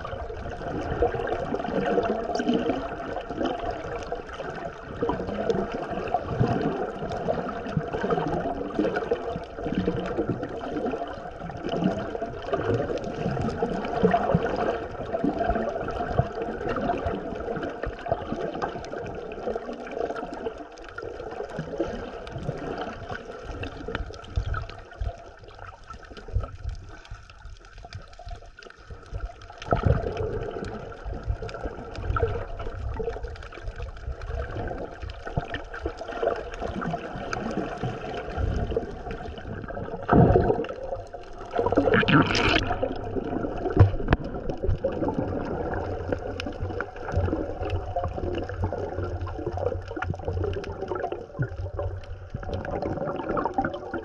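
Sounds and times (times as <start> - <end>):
underwater water gurgling: 0.0 - 54.0
small knocks and crackles: 40.1 - 45.0.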